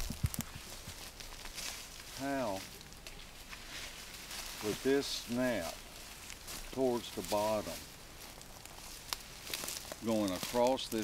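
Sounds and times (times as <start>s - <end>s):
rustling in undergrowth: 0.0s - 11.0s.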